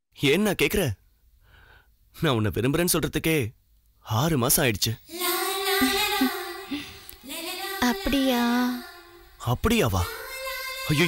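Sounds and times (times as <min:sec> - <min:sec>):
high singing voice: 0:05.0 - 0:11.0.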